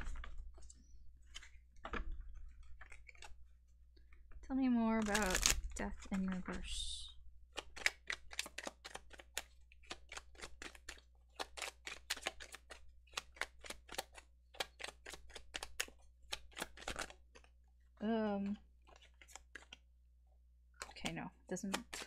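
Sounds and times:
cards being shuffled: 0.0s - 4.4s, 5.0s - 6.8s, 7.5s - 17.6s, 18.4s - 19.9s, 20.8s - 22.0s.

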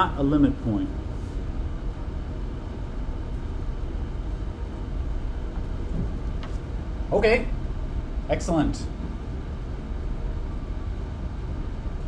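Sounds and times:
low room noise rumble: 0.0s - 12.0s.

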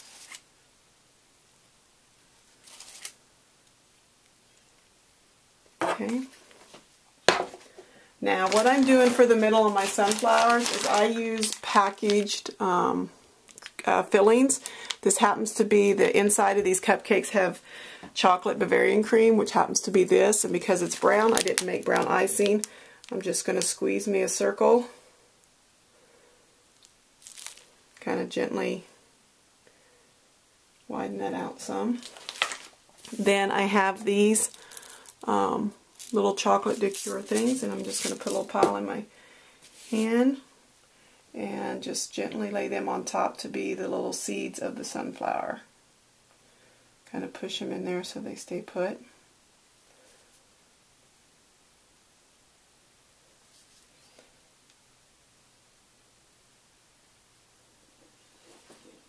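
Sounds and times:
paper and plastic rustling: 2.6s - 3.2s, 8.3s - 12.5s, 20.8s - 23.2s, 27.2s - 27.7s, 31.9s - 35.2s, 36.0s - 38.8s
plastic bag crinkling: 8.2s - 12.5s, 20.6s - 23.7s, 27.2s - 27.8s, 31.9s - 38.7s.

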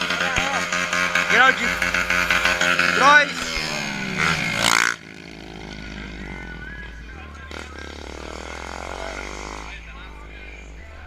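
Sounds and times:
people talking: 0.0s - 4.4s, 5.9s - 11.0s
motorcycle engine revving: 0.0s - 11.0s.

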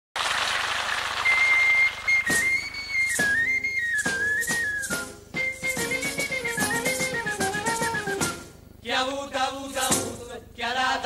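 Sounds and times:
high whistle melody: 1.2s - 8.5s.

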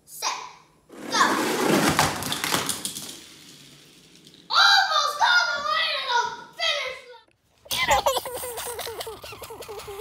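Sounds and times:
toy cars rattling down cardboard ramp: 0.9s - 4.5s
toy cars clicking against floor: 2.0s - 4.5s
child shouting: 4.5s - 7.2s
child laughing: 7.6s - 10.0s.

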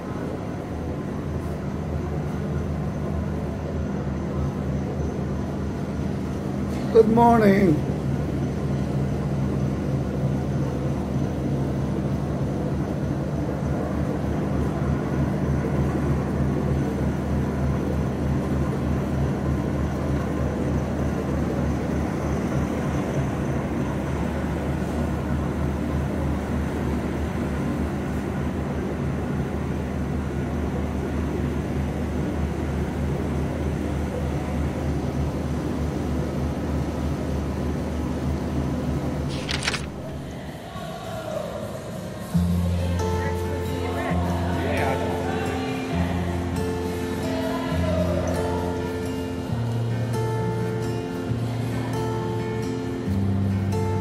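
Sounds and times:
low ship machinery drone: 0.0s - 54.0s.

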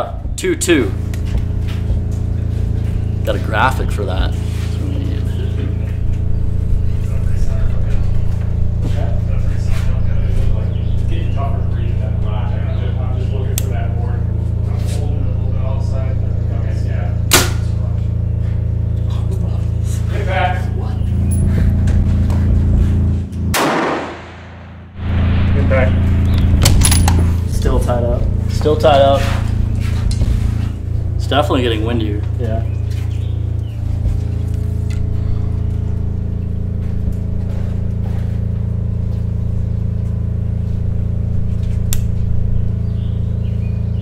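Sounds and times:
background music with bass line: 20.7s - 23.6s
bow shot snap: 23.5s - 27.4s.

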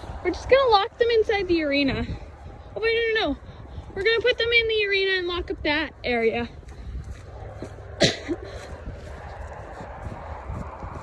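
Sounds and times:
footsteps in snow: 0.0s - 11.0s
wind rumble on microphone: 0.0s - 11.0s.

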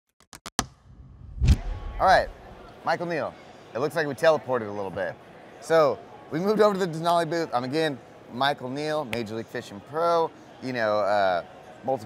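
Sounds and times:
low hit sound effect: 0.6s - 2.5s.

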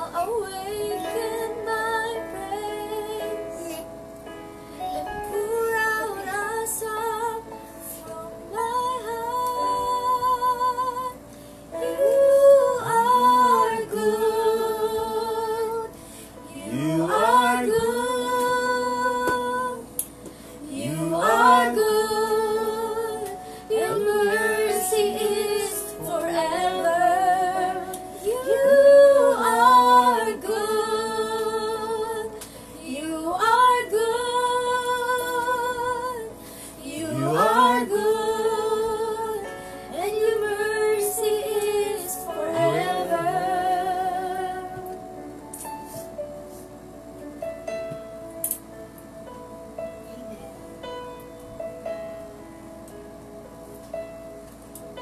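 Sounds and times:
woman and girl singing: 0.0s - 3.8s, 5.0s - 11.2s, 11.8s - 15.9s, 16.5s - 20.0s, 20.6s - 45.0s.

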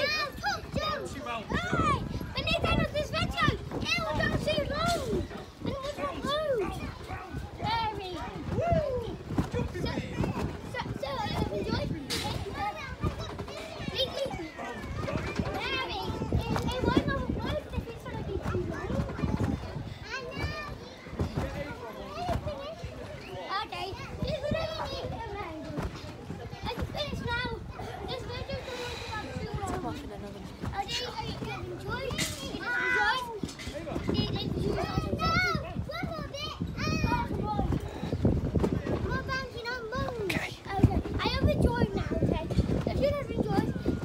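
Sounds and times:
thumps of trampoline bouncing: 0.0s - 23.1s, 23.7s - 28.6s, 29.4s - 44.0s
children calling and chattering: 0.0s - 44.0s.

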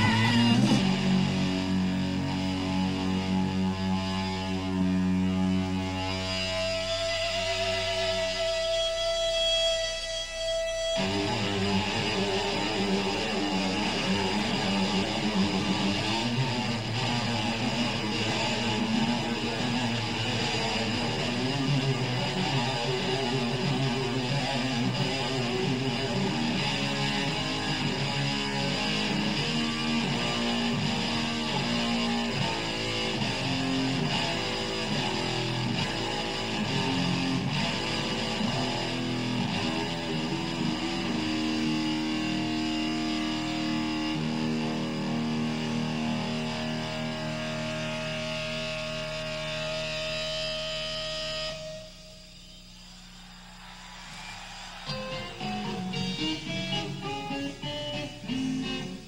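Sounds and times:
electric guitar solo: 0.0s - 59.0s.

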